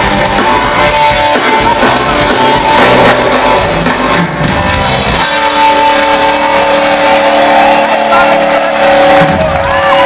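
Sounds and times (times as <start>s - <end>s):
audience cheering: 5.5s - 10.0s.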